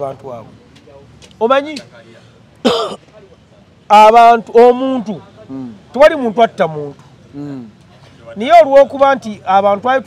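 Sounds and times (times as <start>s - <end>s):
man clearing throat: 2.6s - 3.0s.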